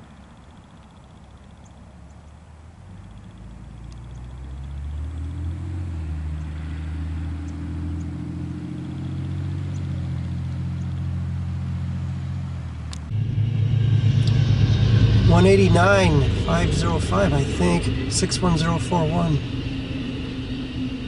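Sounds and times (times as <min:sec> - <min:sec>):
diesel train engine drone: 0:00.0 - 0:21.0
rail noise: 0:00.0 - 0:21.0
train passing at speed: 0:13.1 - 0:21.0.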